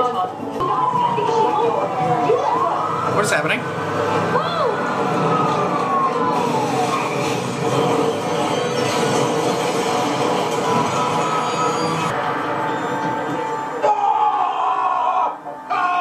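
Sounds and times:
ambulance siren wailing: 0:00.2 - 0:16.0.

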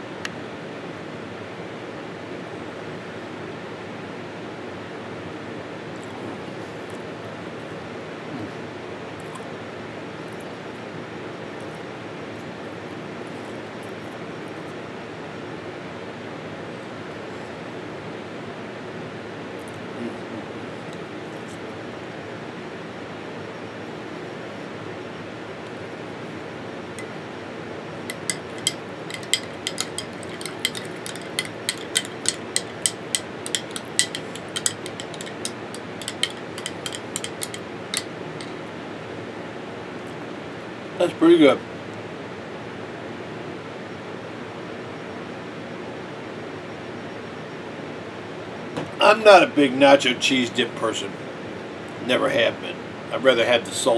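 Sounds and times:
low background noise: 0:00.0 - 0:53.9
metal spoon clinking on glass jar: 0:28.1 - 0:38.6.

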